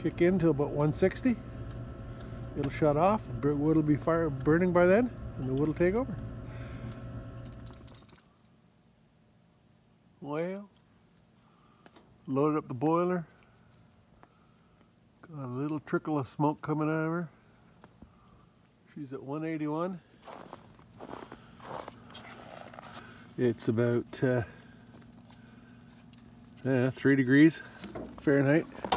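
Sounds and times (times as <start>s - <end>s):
burner humming: 0.0s - 7.8s
light metallic clinks: 7.4s - 8.6s
footsteps crunching in snow: 19.3s - 28.9s.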